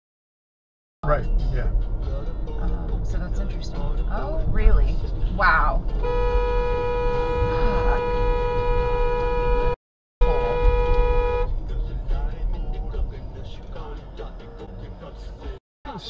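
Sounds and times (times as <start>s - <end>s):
moving car rumble: 1.0s - 16.0s
car horn blast: 5.9s - 11.6s.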